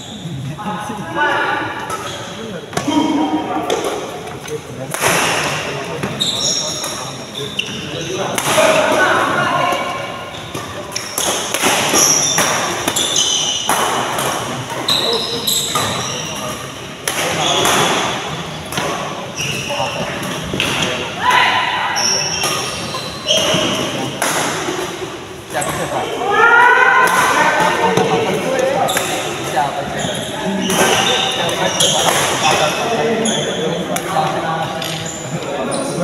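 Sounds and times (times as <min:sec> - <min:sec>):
shoes squeaking on court: 0:06.0 - 0:08.3, 0:10.2 - 0:17.9, 0:18.7 - 0:20.7, 0:22.0 - 0:24.1, 0:27.9 - 0:33.7, 0:34.6 - 0:36.0.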